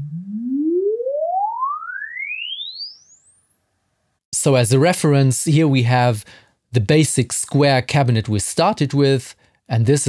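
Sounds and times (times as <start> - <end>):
rising sine sweep tone: 0.0 - 3.7.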